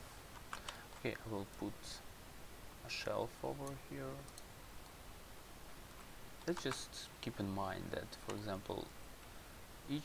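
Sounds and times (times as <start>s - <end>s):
computer mouse clicks: 0.4s - 1.1s, 3.6s - 5.0s, 6.0s - 6.9s.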